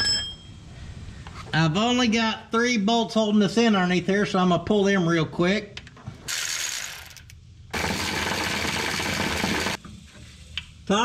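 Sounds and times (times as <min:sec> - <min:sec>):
power wrench rattling: 0:06.3 - 0:09.8.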